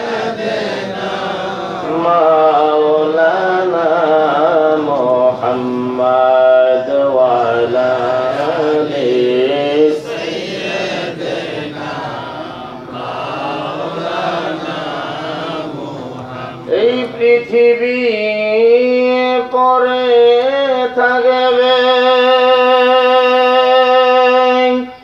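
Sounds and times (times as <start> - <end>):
man chanting into a microphone: 1.4 - 10.3, 15.5 - 25.0.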